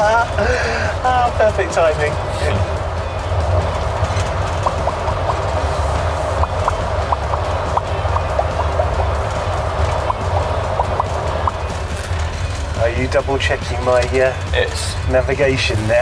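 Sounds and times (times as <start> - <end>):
road and engine drone in vehicle: 0.0 - 16.0.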